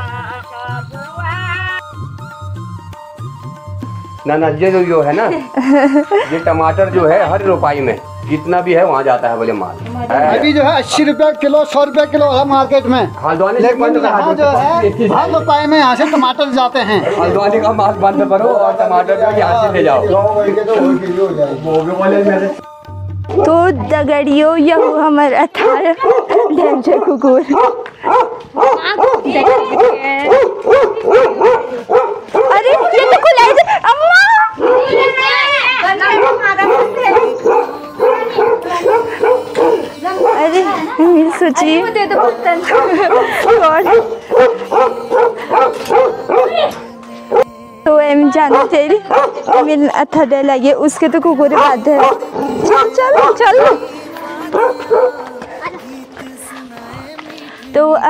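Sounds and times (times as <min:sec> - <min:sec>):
people's voices: 0:23.3 - 0:58.0
dog barking and yelping: 0:24.7 - 0:40.9, 0:42.1 - 0:47.5, 0:48.4 - 0:49.8, 0:51.5 - 0:55.4.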